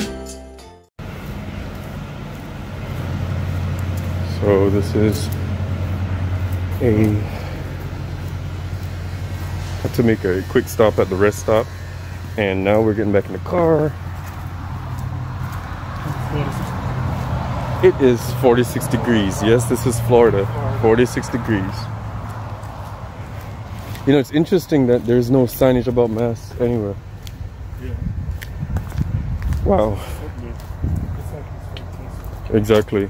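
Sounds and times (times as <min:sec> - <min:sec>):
machinery humming: 0:01.0 - 0:27.0
person's voice: 0:04.2 - 0:05.4, 0:06.7 - 0:07.6, 0:16.0 - 0:16.8, 0:17.8 - 0:21.9, 0:29.6 - 0:33.0.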